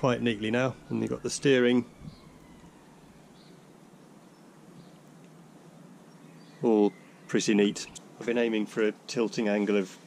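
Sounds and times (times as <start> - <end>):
faint high bird chirps: 0.0 - 8.0
outdoor background hiss: 0.0 - 10.0.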